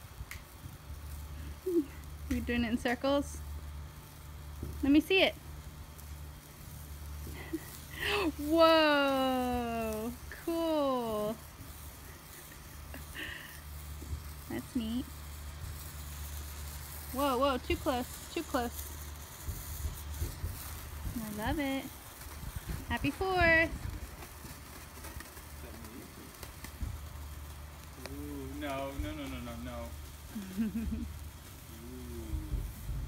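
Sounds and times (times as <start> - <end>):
sparkler fizzing crackle: 0.0 - 33.0
steady low hum: 0.0 - 33.0
low microphone rumble: 13.7 - 33.0.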